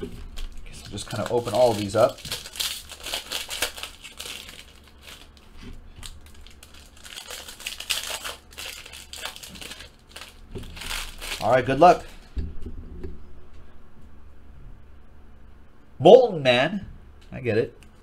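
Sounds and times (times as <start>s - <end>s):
foil wrappers crinkling and tearing: 0.0s - 12.2s.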